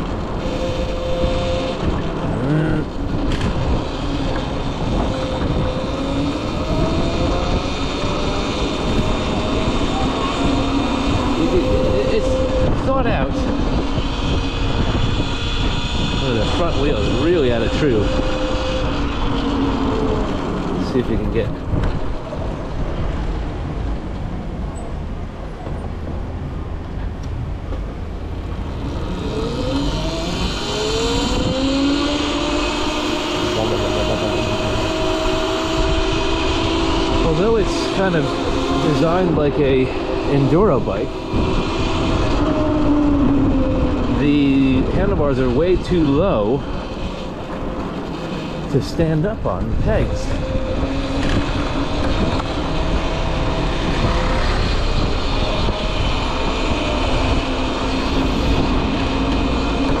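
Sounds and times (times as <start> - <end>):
electric motor whine: 0.0 - 22.4, 28.6 - 60.0
road rumble: 0.0 - 60.0
wind: 0.0 - 60.0.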